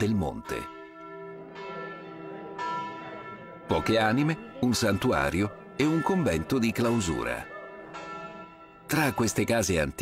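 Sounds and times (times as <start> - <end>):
church bells ringing: 0.0 - 10.0.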